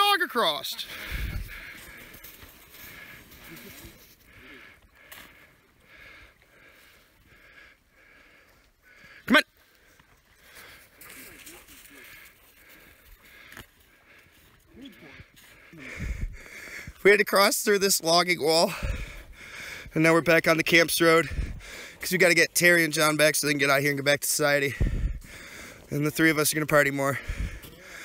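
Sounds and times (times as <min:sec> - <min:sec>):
people moving in snow: 0:00.3 - 0:07.5, 0:08.1 - 0:17.0.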